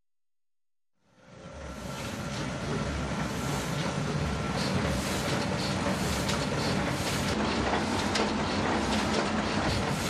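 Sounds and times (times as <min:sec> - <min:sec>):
printing machine humming: 0:01.3 - 0:10.0.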